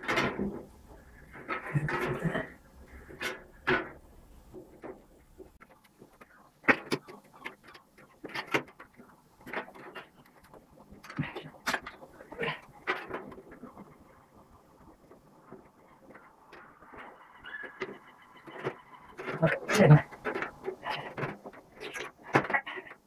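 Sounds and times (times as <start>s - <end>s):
metal sheet clicking and knocking: 0.0s - 23.0s.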